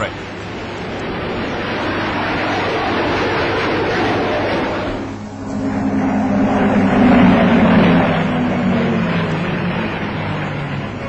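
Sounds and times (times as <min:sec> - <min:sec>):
propeller aircraft flying overhead: 0:00.0 - 0:11.0.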